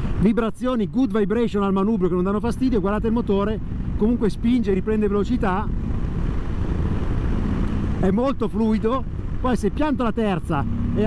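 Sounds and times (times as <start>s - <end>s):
motorcycle engine rumble: 0.0s - 11.0s.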